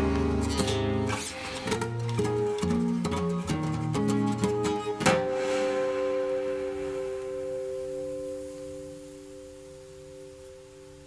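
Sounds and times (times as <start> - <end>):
guitar chord ringing: 0.0 - 11.0.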